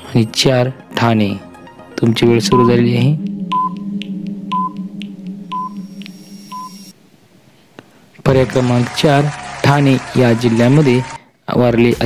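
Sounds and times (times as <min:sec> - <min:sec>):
low steady tone: 0:01.9 - 0:07.3
faint timer ticks: 0:02.5 - 0:06.8
short electronic beeps: 0:03.5 - 0:03.9, 0:05.5 - 0:06.9.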